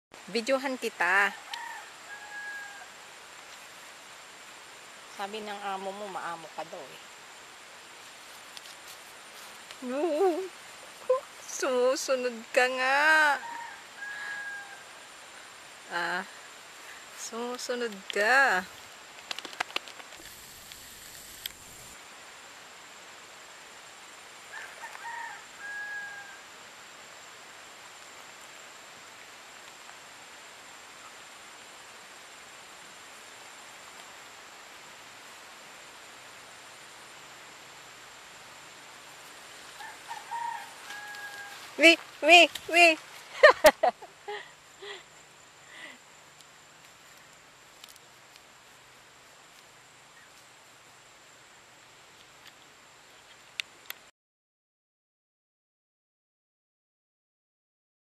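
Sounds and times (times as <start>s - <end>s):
outdoor background noise: 0.0s - 54.1s
background hiss: 0.2s - 54.1s
faint animal call: 1.2s - 3.0s, 13.2s - 15.0s, 24.5s - 26.5s, 39.7s - 43.5s
rooster crowing: 1.3s - 3.1s, 13.3s - 15.0s, 24.5s - 26.5s, 39.7s - 41.8s.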